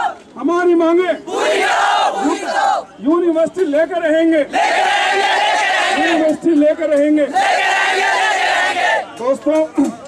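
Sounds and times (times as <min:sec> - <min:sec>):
crowd shouting in unison: 0:00.0 - 0:00.2, 0:01.3 - 0:02.9, 0:04.5 - 0:06.3, 0:07.3 - 0:09.1.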